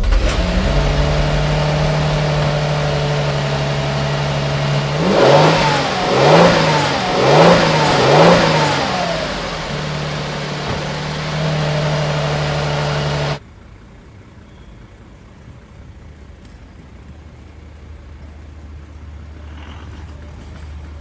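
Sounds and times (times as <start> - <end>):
car engine idling and revving: 0.0 - 14.4.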